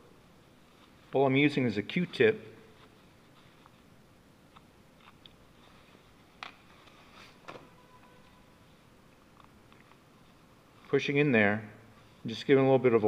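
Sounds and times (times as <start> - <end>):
soft handling clicks and scrapes: 2.7 - 3.9, 4.5 - 11.1.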